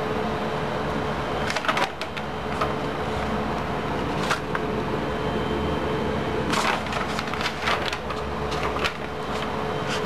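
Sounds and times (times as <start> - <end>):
steady background hum: 0.0 - 10.0
paper crinkling and rustling: 1.4 - 3.4, 4.0 - 4.7, 6.5 - 10.0.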